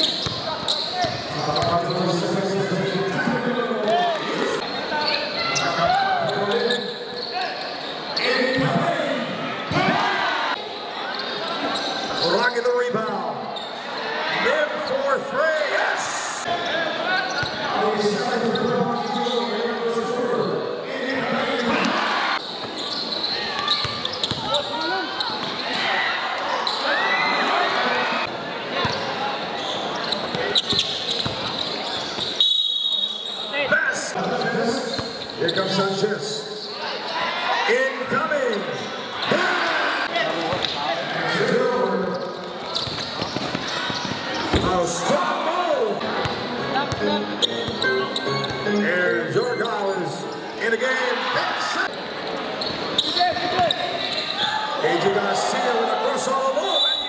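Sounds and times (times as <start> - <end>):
crowd shouting and talking: 0.0 - 57.0
basketball bouncing on court: 0.1 - 1.8, 23.6 - 25.6, 42.6 - 44.7
short high whistle: 32.4 - 33.4.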